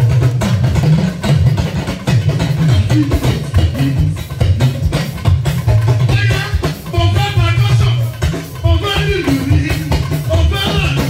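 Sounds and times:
band percussion: 0.0 - 11.0
talking drum pitch bending: 0.0 - 11.0.

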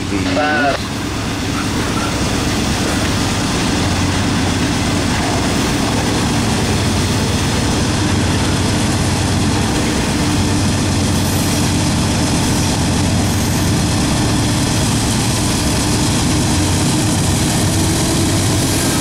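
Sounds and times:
diesel locomotive engine drone: 0.0 - 19.0
freight cars rolling on rails: 0.0 - 19.0.

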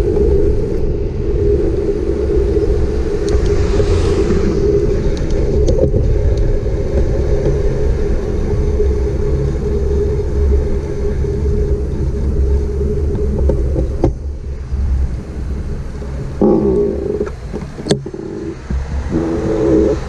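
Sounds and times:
bicycle tyres rolling on asphalt: 0.0 - 20.0
wind on microphone: 0.0 - 20.0.

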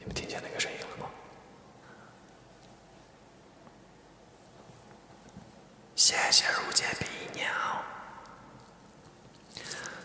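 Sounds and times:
man whispering breathily: 0.0 - 1.2, 6.0 - 8.3.

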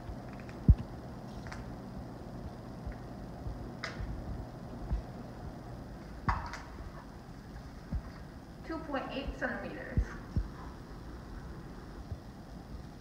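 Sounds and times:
room hum: 0.0 - 13.0.

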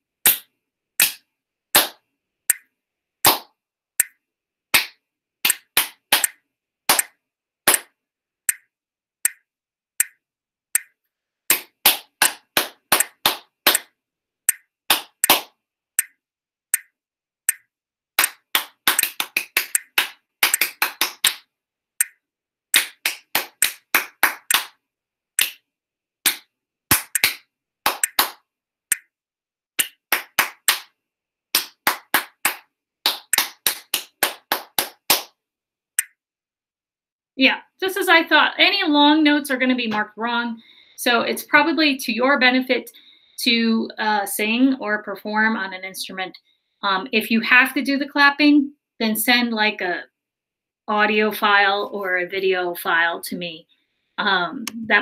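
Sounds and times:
hand claps in rhythm: 0.3 - 1.2, 1.8 - 2.0, 3.2 - 3.5, 4.7 - 7.9, 11.5 - 13.9, 14.9 - 15.6, 18.2 - 21.5, 22.8 - 24.8, 25.4 - 25.6, 26.2 - 28.4, 29.8 - 35.4.

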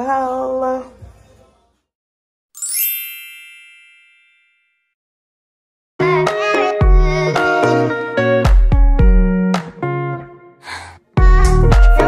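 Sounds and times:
bright chime: 2.6 - 5.0.

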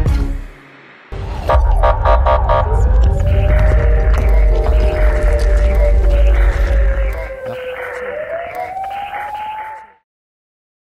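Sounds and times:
noisy whoosh: 0.6 - 7.7
wailing siren-like tone: 1.4 - 10.0.

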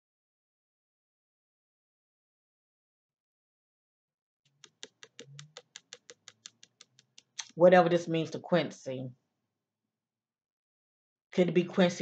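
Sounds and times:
typing on computer keyboard: 4.6 - 7.4.

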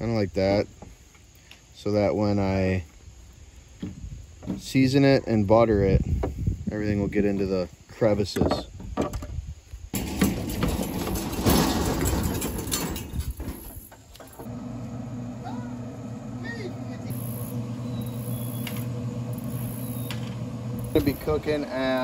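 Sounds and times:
grill fan humming: 10.0 - 22.0.

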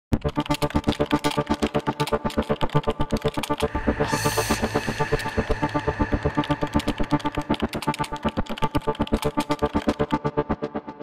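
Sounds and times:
electronic music with pulsing beat: 0.2 - 10.8.

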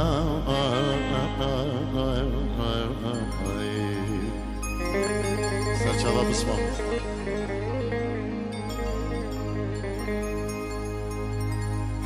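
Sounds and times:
man singing melismatic vocals: 0.0 - 10.0
sustained accompaniment: 0.0 - 12.0.

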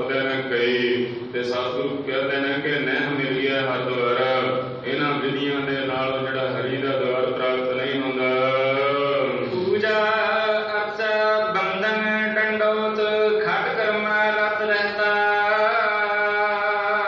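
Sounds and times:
devotional chanting in held notes: 0.0 - 17.0.

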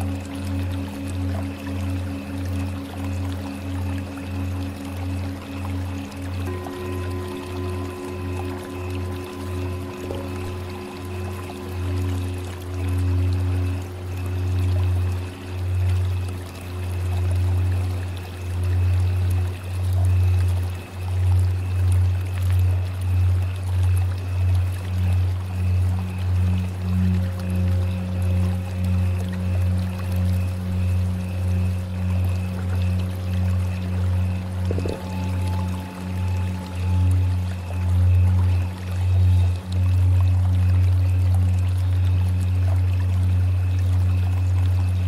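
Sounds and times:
higher bowl tone: 0.0 - 45.0
singing bowls ringing drone: 0.0 - 45.0.

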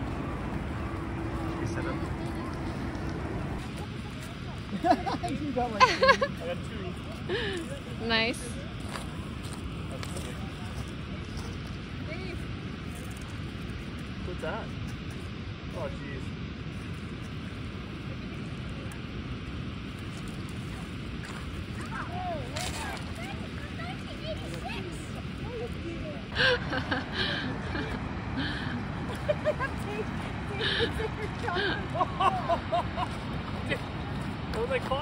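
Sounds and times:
low outdoor rushing noise: 0.0 - 35.0.

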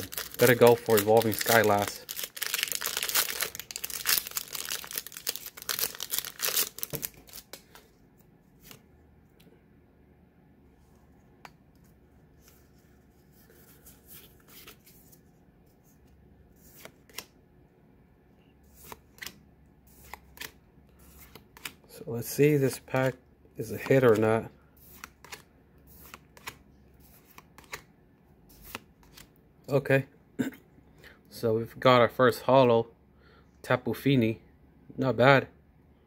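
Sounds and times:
foil pack tearing and crinkling: 0.0 - 7.6.

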